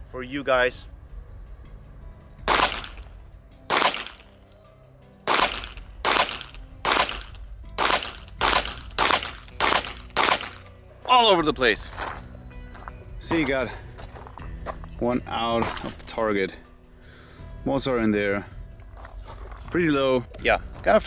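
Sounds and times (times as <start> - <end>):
pistol shots: 2.5 - 3.1, 3.7 - 4.3, 5.3 - 10.7.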